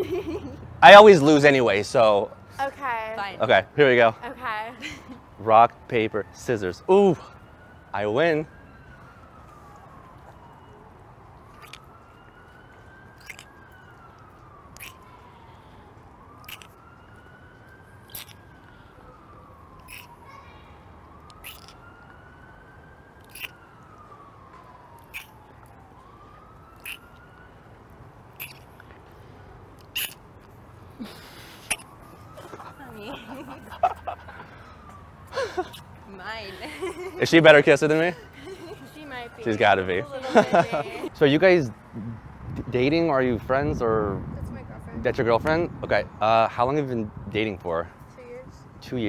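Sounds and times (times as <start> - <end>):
siren wailing faintly: 0.0 - 49.0.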